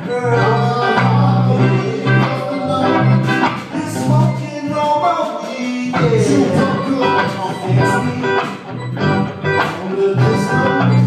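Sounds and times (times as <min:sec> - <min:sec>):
guitar: 0:00.0 - 0:11.0
organ-sounding keyboard: 0:00.0 - 0:11.0.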